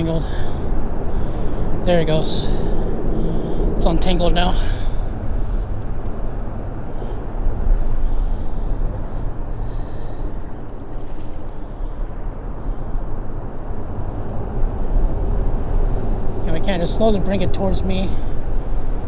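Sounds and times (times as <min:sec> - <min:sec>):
low rumble of road traffic: 0:00.0 - 0:19.0.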